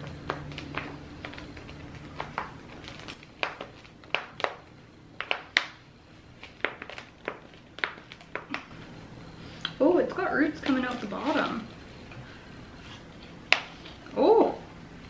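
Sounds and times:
plastic pot crinkling and tapping: 0.0s - 5.8s, 6.4s - 8.7s.

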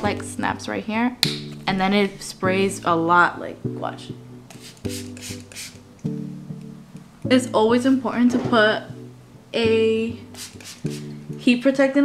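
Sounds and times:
soft acoustic guitar music: 0.0s - 12.0s
spray bottle hissing: 4.5s - 5.9s, 10.3s - 11.2s.

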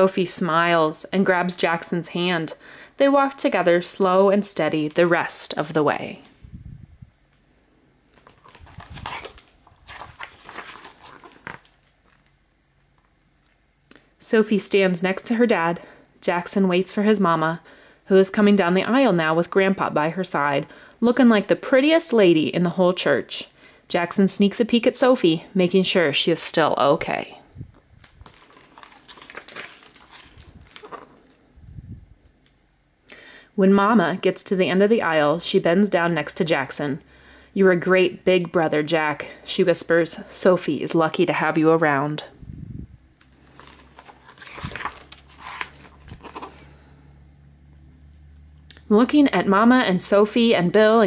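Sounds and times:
book pages turning: 8.1s - 12.4s, 28.0s - 31.4s, 43.2s - 46.8s.

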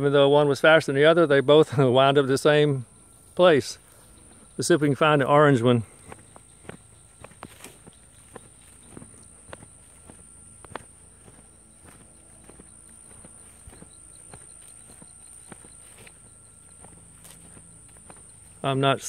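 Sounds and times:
footsteps on dirt and grass: 3.2s - 19.0s.

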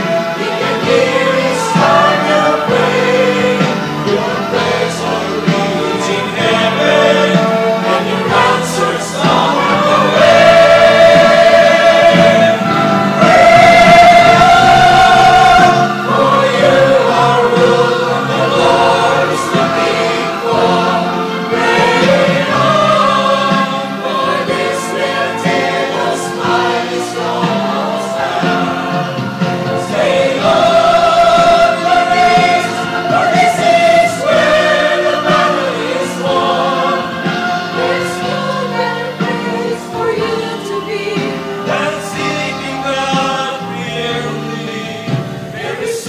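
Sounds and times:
mixed choir singing gospel: 0.0s - 46.0s.

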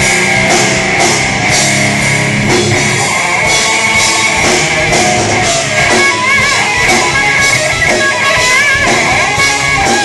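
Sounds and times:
distorted electric guitars: 0.0s - 10.0s
drum kit: 0.0s - 10.0s.

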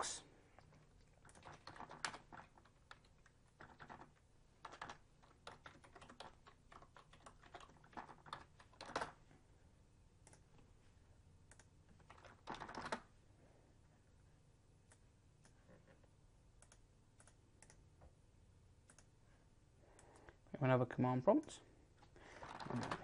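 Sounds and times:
typing on computer keyboard: 0.8s - 9.2s, 11.5s - 13.1s, 22.0s - 23.0s.

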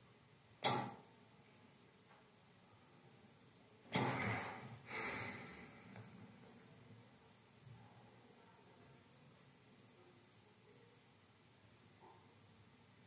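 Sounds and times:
breathy rushes: 4.0s - 6.0s
man breathing: 4.1s - 6.2s.

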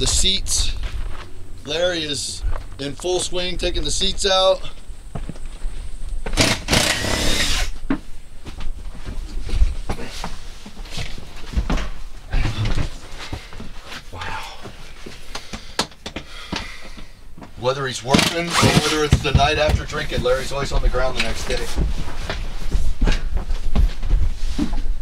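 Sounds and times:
footsteps and thumps on bus floor: 5.1s - 6.4s, 7.8s - 25.0s.

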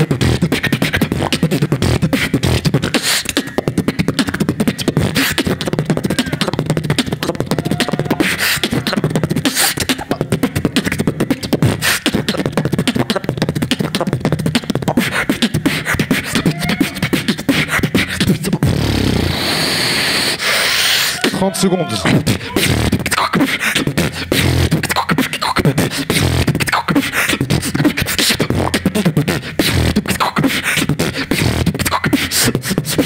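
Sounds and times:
person beatboxing: 0.0s - 33.0s.

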